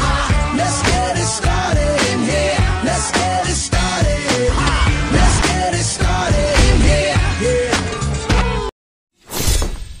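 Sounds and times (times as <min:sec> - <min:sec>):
pop song with vocals: 0:00.0 - 0:08.7
loud crash sound effect: 0:04.5 - 0:05.7.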